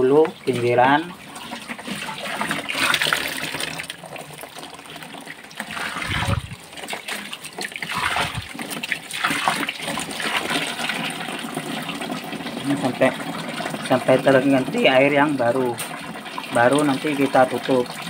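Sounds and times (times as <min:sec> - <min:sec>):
water splashing onto concrete: 0:00.3 - 0:18.0.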